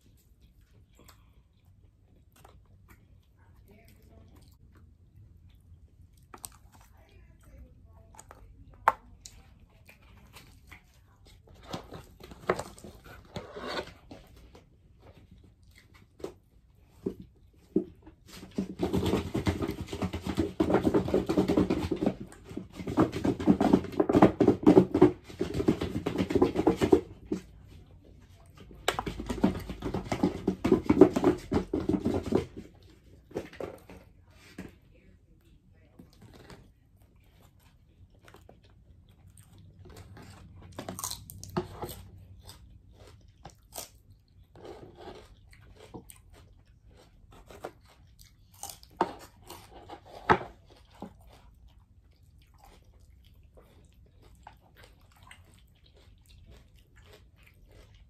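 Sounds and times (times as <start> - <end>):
chewing and mouth noises: 0.0 - 19.6, 32.0 - 58.0.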